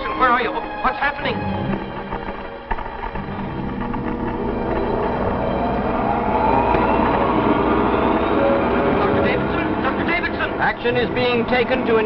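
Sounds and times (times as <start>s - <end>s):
rumbling drone with rising whine: 3.0s - 11.8s.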